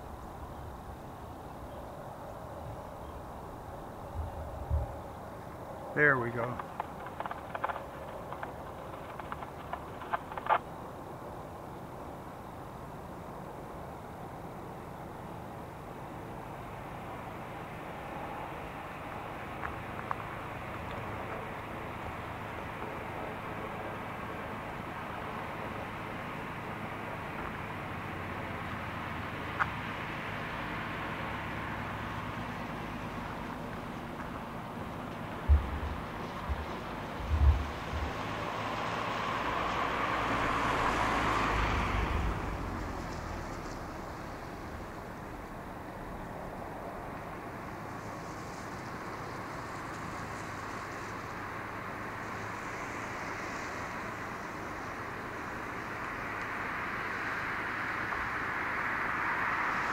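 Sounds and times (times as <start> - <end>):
distant freight train: 0.0 - 59.9
sharp clicks: 6.4 - 10.7
low thumps: 35.2 - 38.5.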